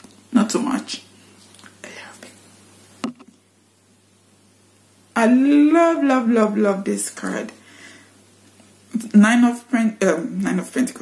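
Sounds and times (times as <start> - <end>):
low electrical hum: 0.0 - 11.0
woman whispering: 1.8 - 2.4.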